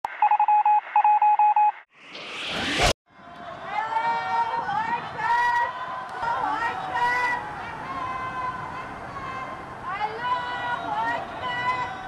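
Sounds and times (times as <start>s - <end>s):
electronic beeps: 0.1s - 2.6s.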